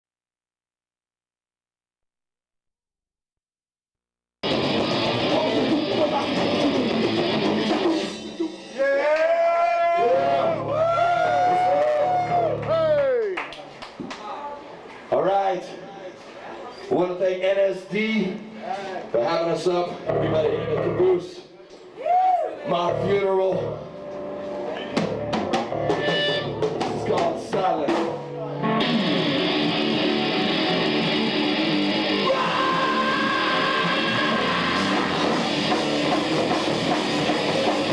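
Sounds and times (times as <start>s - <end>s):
drum hits: 4.4s - 8.7s, 25.0s - 28.3s
sustained bending electric guitar notes: 4.4s - 8.8s, 20.0s - 21.2s, 22.8s - 27.2s, 28.2s - 37.9s
live heavy metal band: 4.4s - 8.9s, 28.6s - 37.9s.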